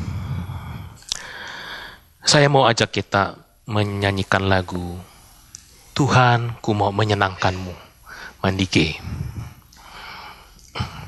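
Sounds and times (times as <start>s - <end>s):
man breathing into microphone: 0.0s - 2.1s, 7.6s - 11.0s
microphone handling rumble: 8.9s - 9.6s.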